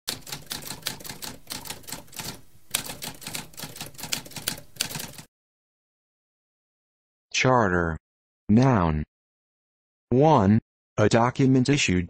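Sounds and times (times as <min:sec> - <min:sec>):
typewriter keys clacking: 0:00.1 - 0:05.3.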